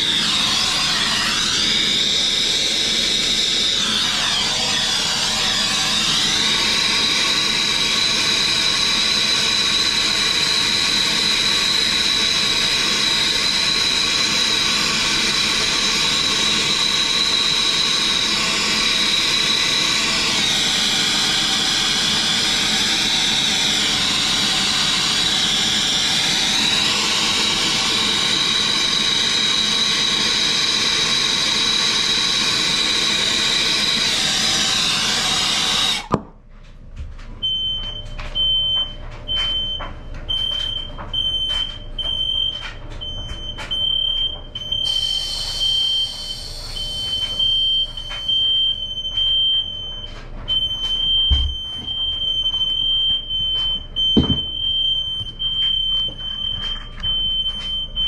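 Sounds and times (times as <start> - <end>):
torch hissing and whistling: 0.0 - 36.2, 44.7 - 48.8
smoke alarm pulsing beep: 37.4 - 58.0.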